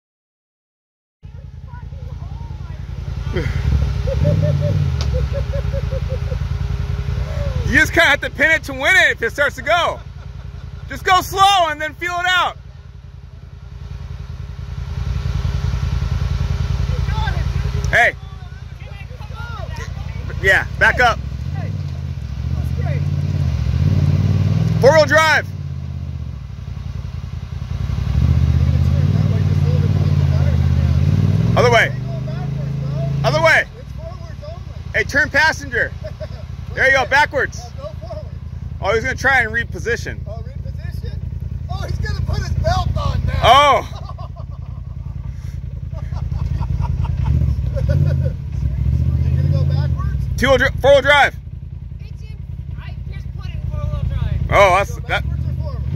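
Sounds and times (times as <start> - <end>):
vehicle engine rumbling: 1.2 - 55.9.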